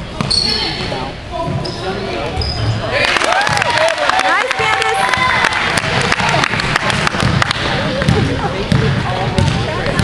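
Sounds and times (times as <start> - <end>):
sneakers squeaking: 0.0 - 2.9
spectators' voices and calls: 0.0 - 10.0
basketball bouncing on hardwood: 8.0 - 10.0.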